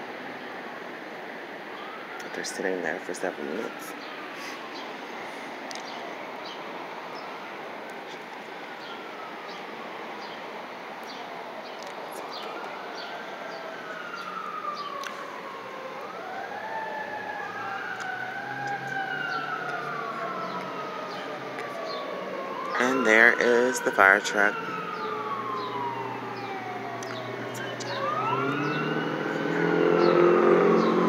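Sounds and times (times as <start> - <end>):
fire truck siren wailing: 0.0 - 31.0.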